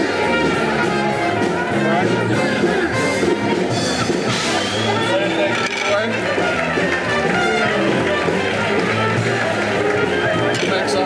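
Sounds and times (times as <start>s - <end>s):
jazzy brass band music: 0.0s - 10.8s
crowd talking: 0.0s - 11.0s.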